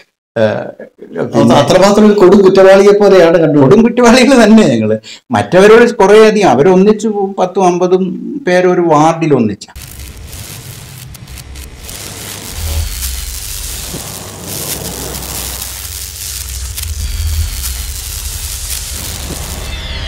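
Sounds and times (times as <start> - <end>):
dense electric crackling: 9.8 - 20.0.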